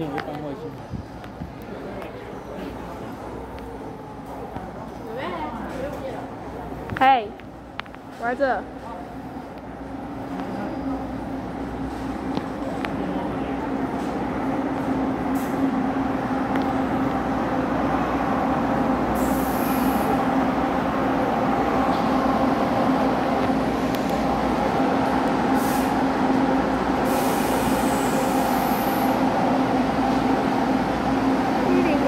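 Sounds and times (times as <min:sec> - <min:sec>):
diesel train engine drone: 0:00.0 - 0:32.0
brief hisses: 0:19.2 - 0:20.1.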